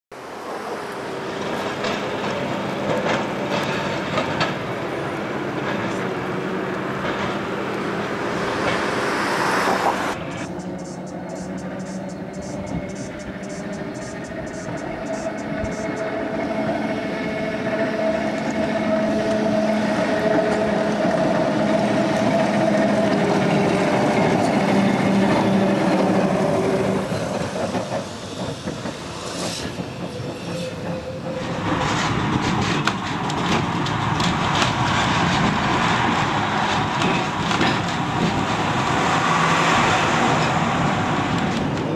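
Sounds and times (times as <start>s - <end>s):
tram drone: 0.1s - 41.9s
tram wheels clattering over rails: 0.4s - 41.9s.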